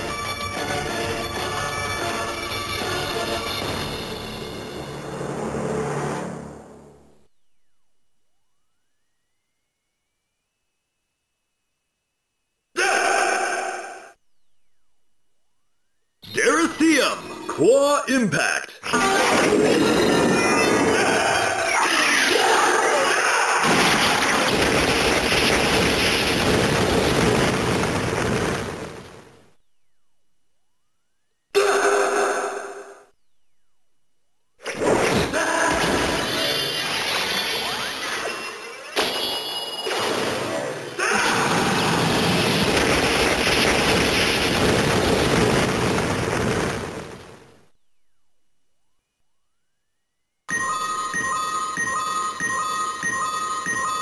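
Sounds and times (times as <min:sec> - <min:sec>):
electronic steady tone: 0:07.0 - 0:12.7, 0:14.2 - 0:16.4, 0:29.5 - 0:31.6, 0:47.7 - 0:54.0
electronic explosion-like burst: 0:23.6 - 0:29.6, 0:41.4 - 0:47.7
toy music and sound effects: 0:50.5 - 0:54.0.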